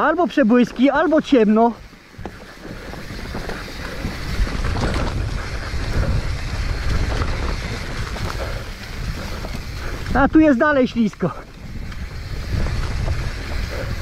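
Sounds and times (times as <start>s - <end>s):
mountain bike rumble and rattle: 0.0s - 14.0s
wind on microphone: 0.7s - 14.0s.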